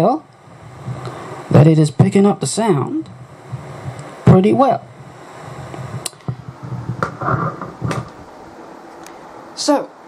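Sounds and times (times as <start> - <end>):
valve amplifier hum: 0.0 - 10.0.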